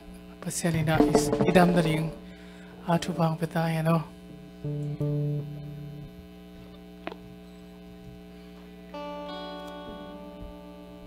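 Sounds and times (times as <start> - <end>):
electrical hum: 0.0 - 11.0
held instrument note: 1.0 - 2.4.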